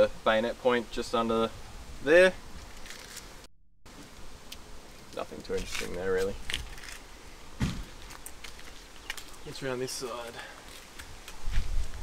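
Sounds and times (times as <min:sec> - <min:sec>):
quiet outdoor background: 0:00.0 - 0:12.0
dull low thump: 0:07.6 - 0:08.0.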